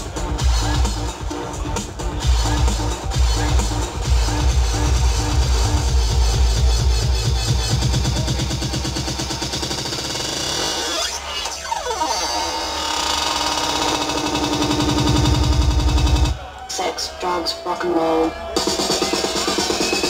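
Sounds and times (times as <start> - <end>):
electronic dance music: 0.0 - 12.2, 13.2 - 20.0
pounding kick drum: 2.0 - 9.9, 14.2 - 16.4.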